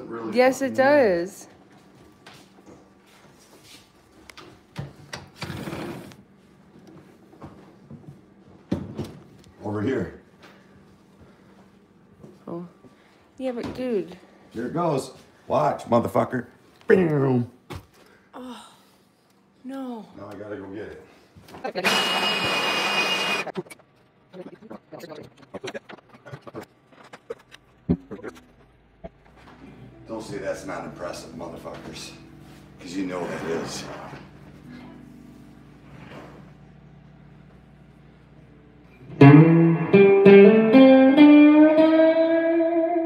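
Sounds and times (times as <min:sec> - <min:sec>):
window sliding open: 0:05.4 - 0:06.2
shop vacuum whine: 0:21.7 - 0:23.5.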